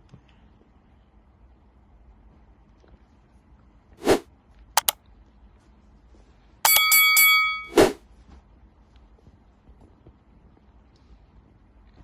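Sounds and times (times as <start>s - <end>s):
metallic ringing: 6.7s - 8.0s.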